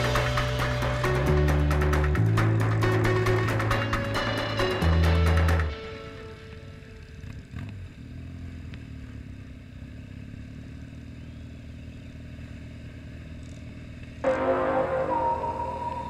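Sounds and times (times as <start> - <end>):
road and wind noise: 0.0 - 14.4
motorcycle engine hum: 0.0 - 16.0.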